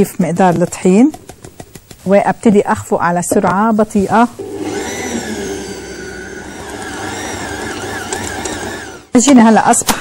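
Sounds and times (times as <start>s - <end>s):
stand mixer motor hum: 4.4s - 9.1s.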